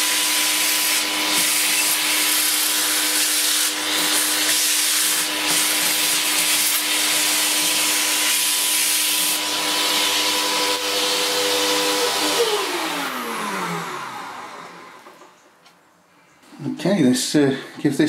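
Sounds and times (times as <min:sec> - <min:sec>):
vacuum cleaner running: 0:00.0 - 0:15.3
vacuum motor winding down: 0:00.0 - 0:15.3.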